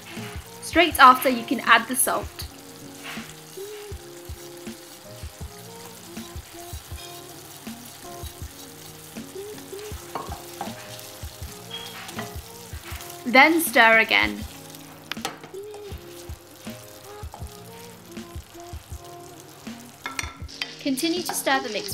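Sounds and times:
tomatoes sizzling in oil: 0.0 - 21.9.

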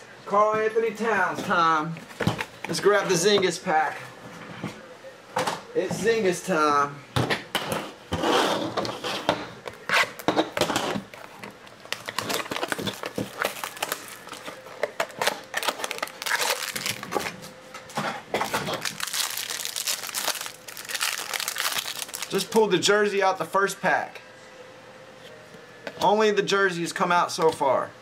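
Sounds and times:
plastic wrapper crinkling and tearing: 11.2 - 17.6, 18.4 - 22.6.

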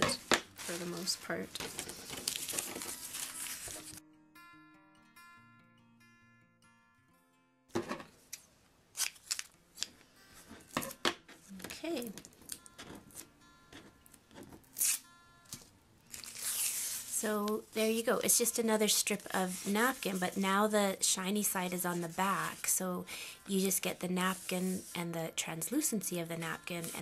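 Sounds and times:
paper and tape crinkling: 0.0 - 4.0, 8.3 - 13.3, 14.3 - 22.8, 23.6 - 25.0, 26.1 - 27.0
acoustic guitar music: 0.0 - 8.9, 9.6 - 27.0.

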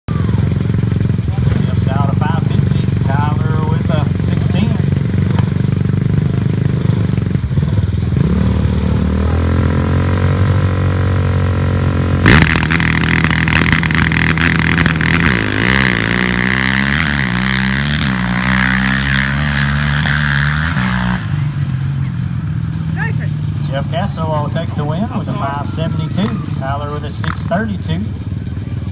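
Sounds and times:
utv engine revving: 0.1 - 28.3
atv engine revving: 0.1 - 28.9.

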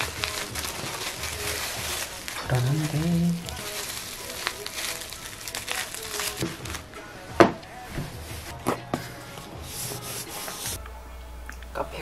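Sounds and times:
bubble wrap crinkling: 0.0 - 8.6.

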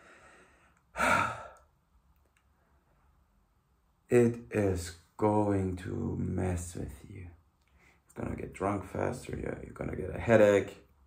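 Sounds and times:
man sighing: 0.1 - 1.7.

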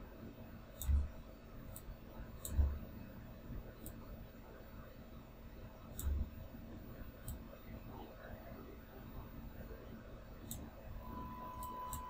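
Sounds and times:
computer mouse clicks: 5.9 - 6.2.

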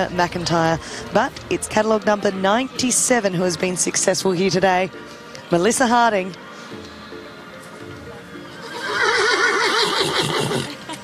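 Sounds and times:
background music: 0.0 - 11.0
horse whinnying: 8.5 - 10.8.

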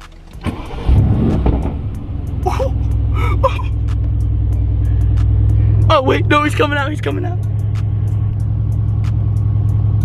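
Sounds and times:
car starter turning: 0.0 - 7.1
car engine idling: 0.0 - 10.0.

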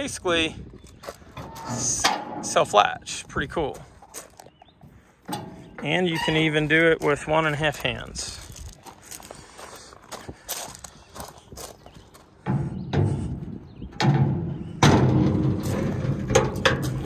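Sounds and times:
footsteps on gravel: 0.2 - 13.3
metal gate rubbing and knocking: 1.4 - 2.9, 5.3 - 6.8, 12.4 - 17.0.

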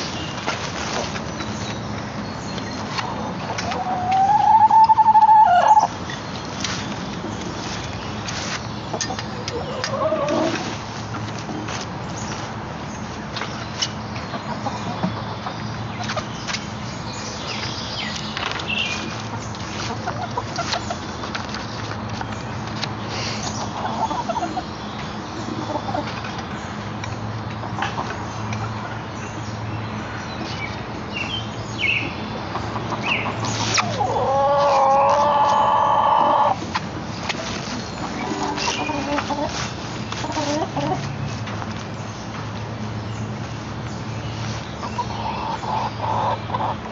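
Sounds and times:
chickens clucking: 0.0 - 16.9, 17.5 - 46.9.

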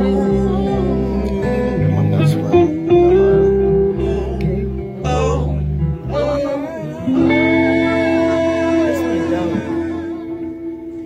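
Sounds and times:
bass line: 0.0 - 11.0
guitars: 0.0 - 11.0
live band playing: 0.0 - 11.0.

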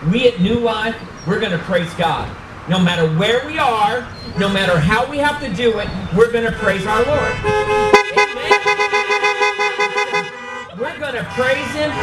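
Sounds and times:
car horns honking: 4.2 - 5.0, 6.4 - 12.0.

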